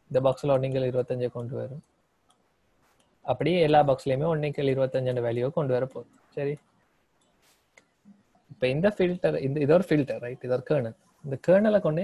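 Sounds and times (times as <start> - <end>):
man speaking: 0.0 - 1.9, 3.2 - 6.6, 8.5 - 12.0.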